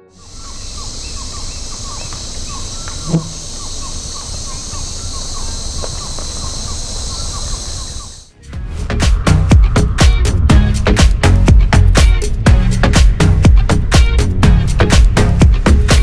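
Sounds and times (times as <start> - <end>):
bird chirping: 0.0 - 8.3
high insect drone: 0.0 - 8.3.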